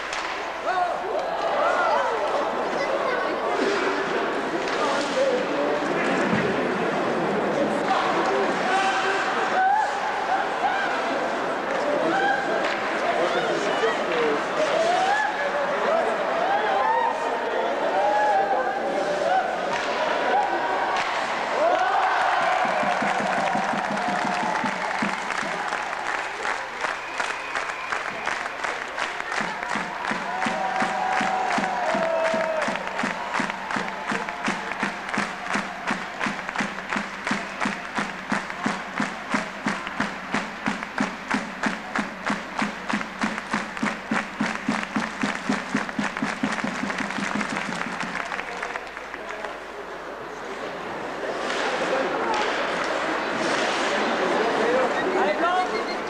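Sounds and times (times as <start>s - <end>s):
crowd shouting and cheering: 0.0s - 56.0s
crowd clapping in unison: 19.7s - 49.9s.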